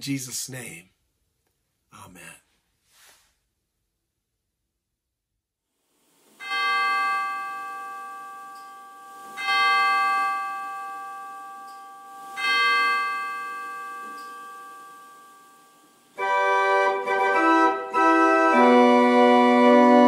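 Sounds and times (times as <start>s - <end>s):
bell ringing: 6.4s - 18.1s.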